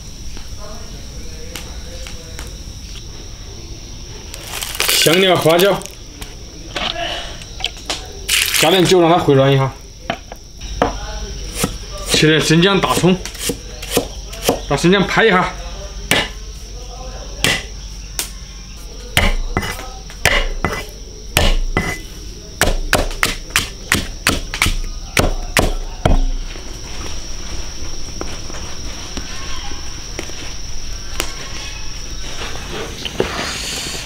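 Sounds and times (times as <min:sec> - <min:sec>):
high insect drone: 0:00.0 - 0:34.0
cleaver chopping on wooden block: 0:12.9 - 0:14.6, 0:16.1 - 0:16.3, 0:17.4 - 0:17.7, 0:19.2 - 0:20.8, 0:21.4 - 0:22.0, 0:22.6 - 0:26.4.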